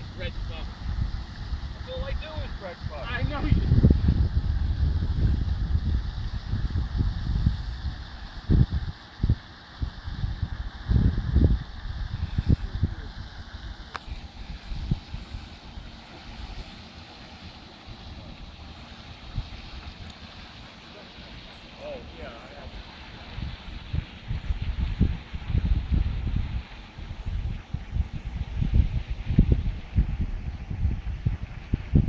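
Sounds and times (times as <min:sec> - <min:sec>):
wind buffeting microphone: 0:00.0 - 0:32.0.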